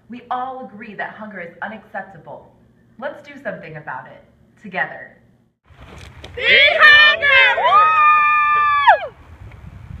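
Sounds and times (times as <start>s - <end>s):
person shouting yeehaw: 6.4s - 9.1s.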